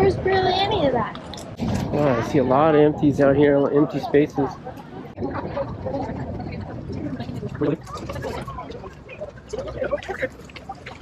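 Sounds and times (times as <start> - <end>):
people talking indistinctly: 0.0 - 11.0.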